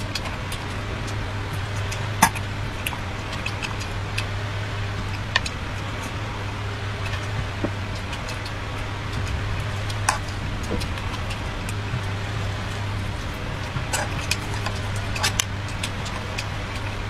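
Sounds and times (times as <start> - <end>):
steady hiss with low hum: 0.0 - 17.0.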